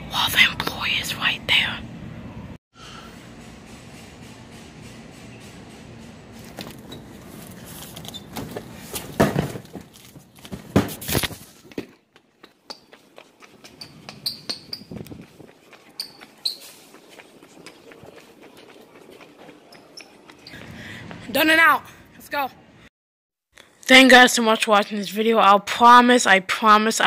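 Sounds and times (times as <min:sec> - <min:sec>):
footsteps: 0:03.4 - 0:21.4
cardboard boxes bumping: 0:08.3 - 0:11.1
short high squeaks: 0:13.8 - 0:15.0, 0:16.0 - 0:16.8.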